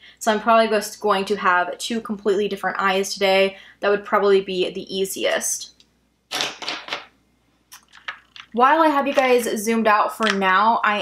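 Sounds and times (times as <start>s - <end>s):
makeup brushes clattering: 7.8s - 9.6s, 10.2s - 10.6s.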